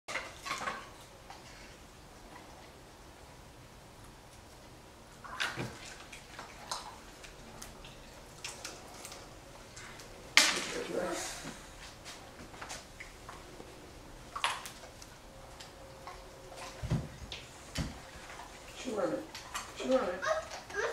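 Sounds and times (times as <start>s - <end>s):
toddler's voice: 19.8s - 20.9s.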